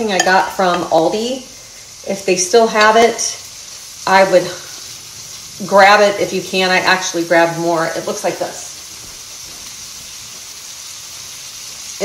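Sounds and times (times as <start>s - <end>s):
food sizzling in a skillet: 0.0s - 12.0s.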